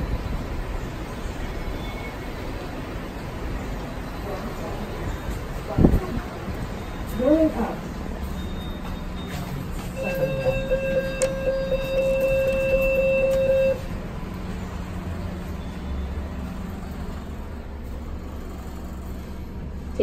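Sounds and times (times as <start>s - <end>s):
lift humming: 0.0s - 20.0s
electronic buzzer tone: 10.0s - 13.9s.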